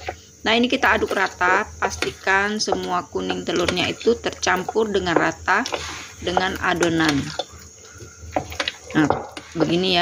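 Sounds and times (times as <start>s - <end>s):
spatula stirring batter: 0.0s - 10.0s
scrapes and knocks on bowl: 5.1s - 7.5s.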